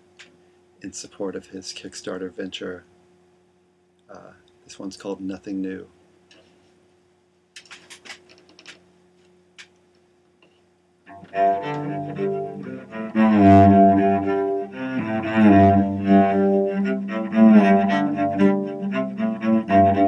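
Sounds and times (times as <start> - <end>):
cello bowed notes: 11.1 - 20.0.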